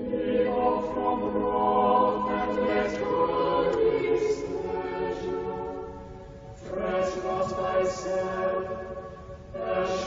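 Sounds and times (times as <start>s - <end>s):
choir singing sustained notes: 0.0s - 10.0s.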